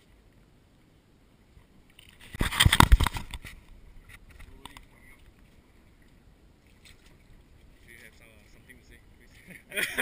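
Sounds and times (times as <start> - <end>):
faint wind: 0.0 - 10.0
water noise: 0.0 - 10.0.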